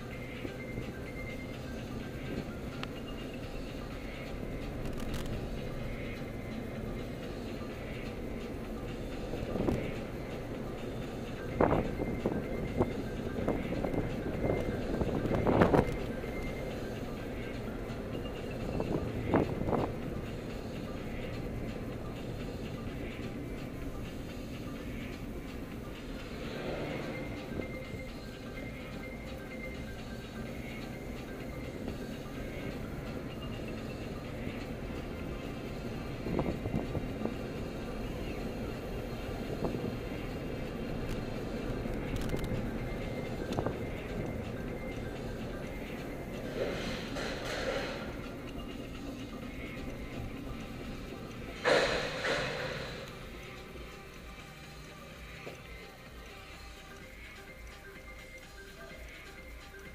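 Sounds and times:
car engine and road noise: 0:00.0 - 0:59.9
music playing in car: 0:00.0 - 0:59.9.

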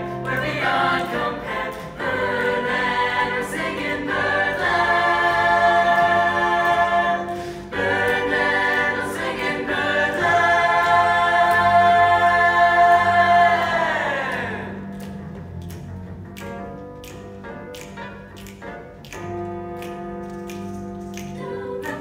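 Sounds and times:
choir singing held chords: 0:00.0 - 0:14.9, 0:21.4 - 0:22.0.

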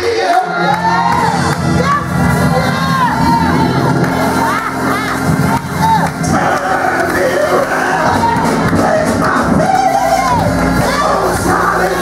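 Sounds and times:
congregation shouting and cheering: 0:00.0 - 0:12.0
sustained instrumental chords: 0:00.0 - 0:12.0.

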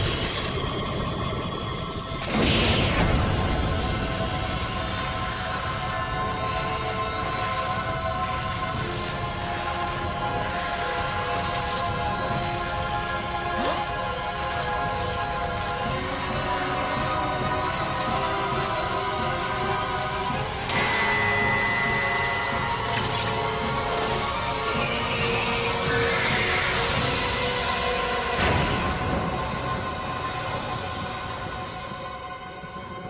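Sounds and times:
dramatic orchestral score: 0:00.0 - 0:33.0.

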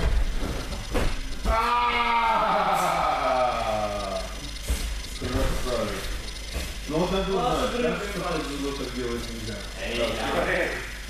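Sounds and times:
indistinct voices: 0:01.4 - 0:11.0
faint rapid clicking: 0:03.9 - 0:10.2.

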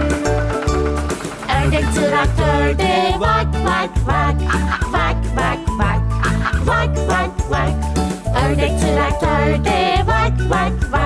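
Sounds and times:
children's song music: 0:00.0 - 0:11.0.

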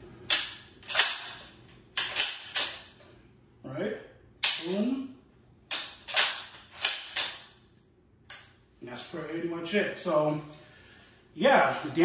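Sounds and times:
rifle bolt metallic clicks: 0:00.3 - 0:02.8, 0:05.7 - 0:07.5.

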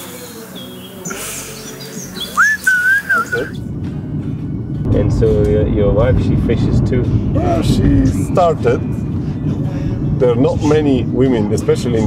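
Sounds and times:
songbirds chirping: 0:00.0 - 0:03.6
wavering whistled bird phrase: 0:00.6 - 0:03.6.

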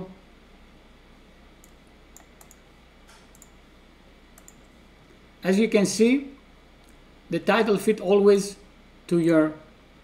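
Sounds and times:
low steady hum: 0:00.0 - 0:10.0
computer mouse clicks: 0:01.6 - 0:03.6, 0:04.3 - 0:04.7.

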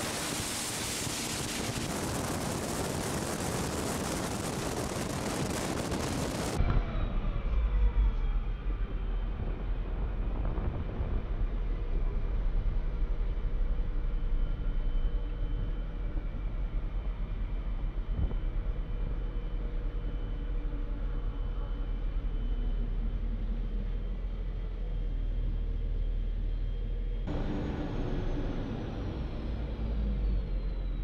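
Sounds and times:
wind rushing over microphone: 0:00.0 - 0:07.0, 0:09.2 - 0:11.8
armored car engine rumbling: 0:26.8 - 0:31.0.

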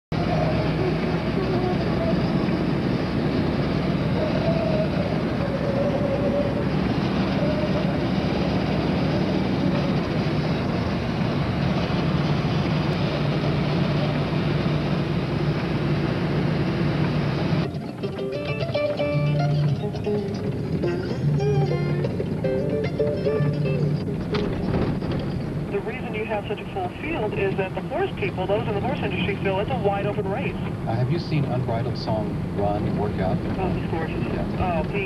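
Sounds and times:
car cabin road and engine noise: 0:00.1 - 0:35.0
faint wavering tones: 0:00.2 - 0:10.9.

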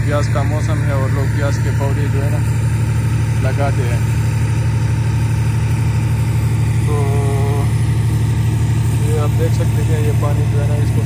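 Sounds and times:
engine running with low hum: 0:00.0 - 0:11.0.

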